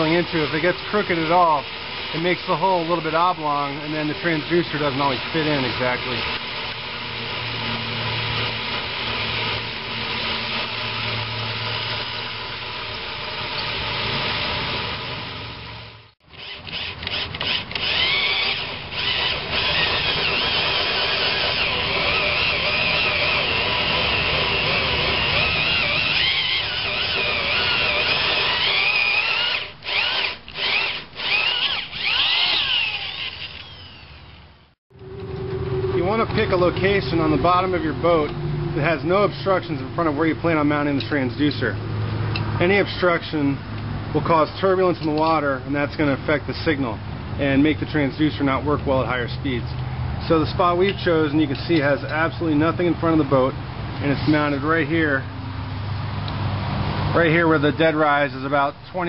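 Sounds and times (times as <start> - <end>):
power drill motor running: 0.0 - 37.6
hole saw cutting whine: 0.0 - 41.6.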